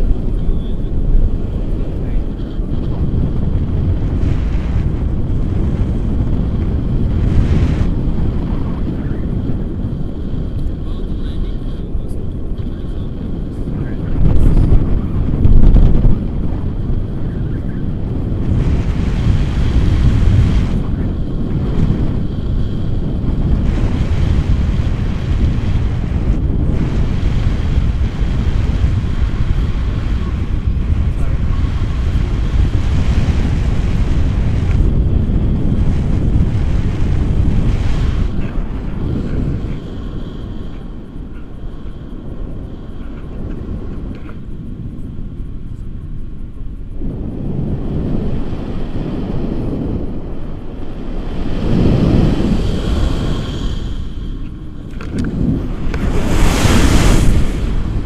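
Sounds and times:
wind rushing over microphone: 0:00.0 - 0:58.0.

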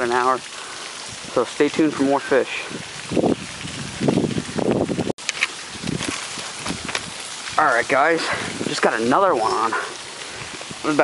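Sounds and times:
camera handling rustle: 0:05.2 - 0:07.1.

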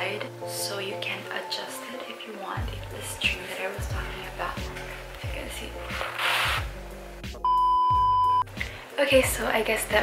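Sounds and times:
soft background music: 0:00.0 - 0:10.0
electronic beep: 0:07.4 - 0:08.4.

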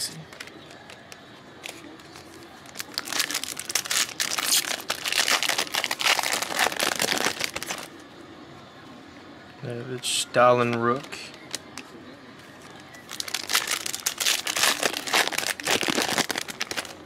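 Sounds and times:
foil wrapper tearing and crinkling: 0:02.4 - 0:07.9, 0:13.0 - 0:17.0.

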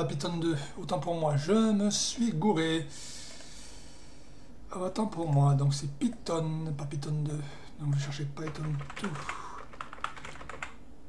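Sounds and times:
computer keyboard typing: 0:08.4 - 0:10.8.

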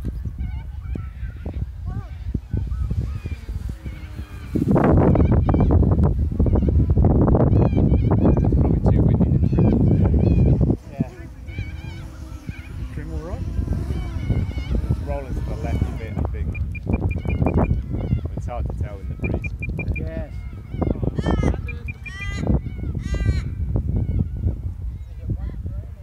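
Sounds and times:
birds calling: 0:00.0 - 0:25.2
wind buffeting microphone: 0:00.0 - 0:26.0.

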